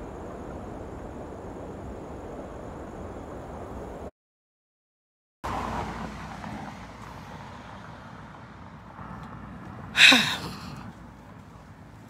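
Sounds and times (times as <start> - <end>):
road traffic: 5.4 - 12.0.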